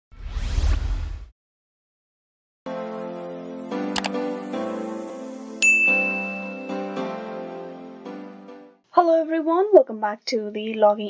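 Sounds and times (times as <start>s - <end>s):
whoosh with rising sweep: 0.1s - 1.3s.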